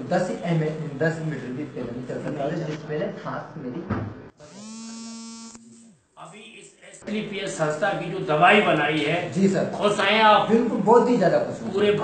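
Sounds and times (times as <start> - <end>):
electric buzz: 4.4 - 7.0.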